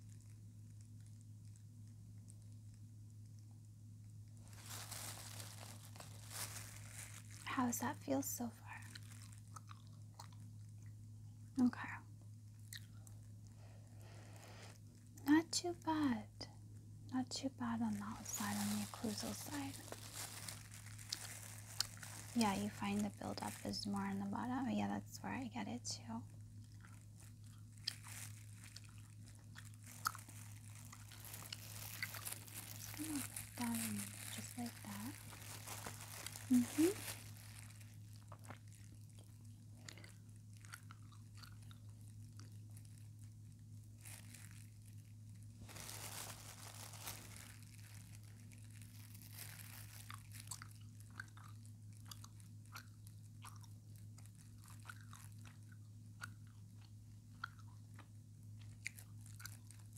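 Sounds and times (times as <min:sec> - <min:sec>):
soft clicks and crunches: 0:00.0 - 0:11.0, 0:17.6 - 0:24.4, 0:26.0 - 0:59.9
low hum: 0:00.0 - 0:49.7.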